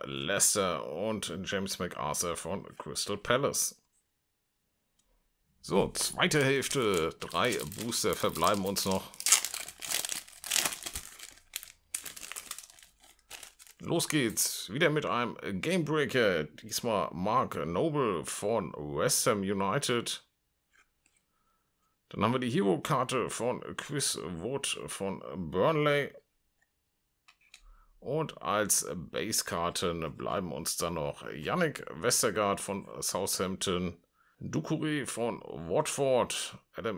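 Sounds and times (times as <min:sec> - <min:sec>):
trading cards clicking and rustling: 0:06.0 - 0:14.4
foil pack tearing and crinkling: 0:06.2 - 0:14.3.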